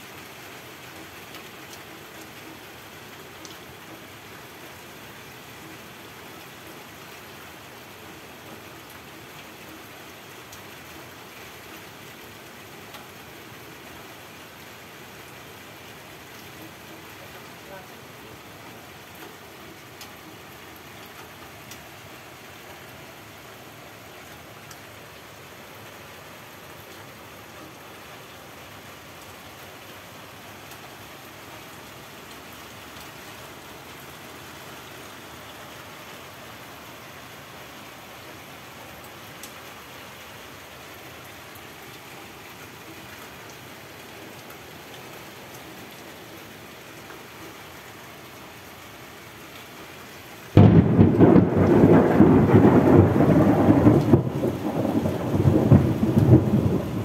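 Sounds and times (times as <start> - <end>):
heavy rain falling: 0.0 - 57.0
loud thunder clap rumbling: 50.6 - 57.0.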